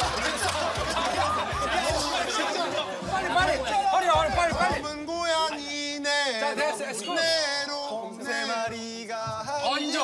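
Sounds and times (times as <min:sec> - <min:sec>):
lively chatter and calling out: 0:00.0 - 0:10.0.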